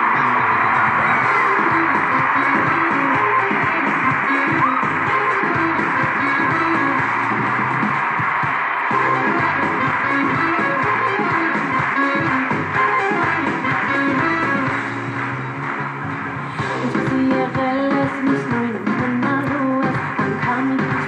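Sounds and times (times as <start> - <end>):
pop music with guitar on television: 0.0 - 21.0.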